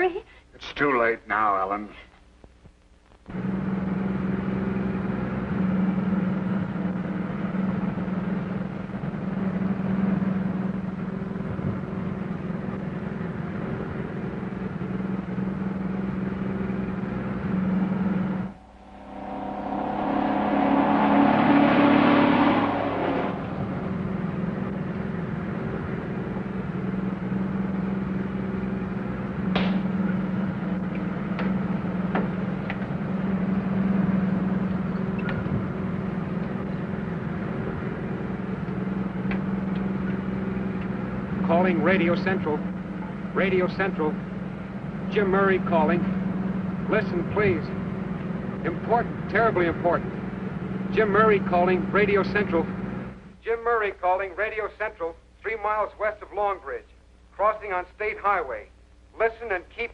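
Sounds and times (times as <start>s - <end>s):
truck engine drone: 3.3s - 53.4s
truck passing by: 16.3s - 29.2s.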